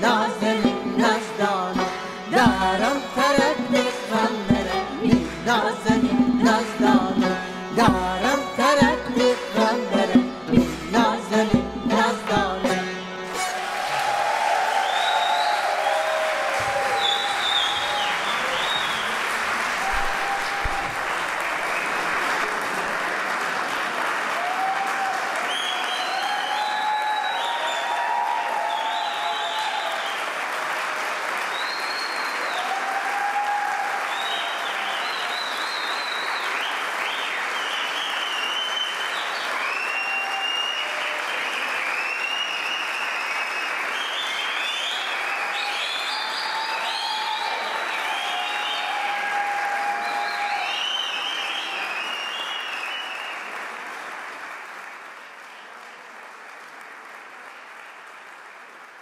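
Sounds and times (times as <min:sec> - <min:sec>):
audience applauding: 0:12.4 - 0:59.0.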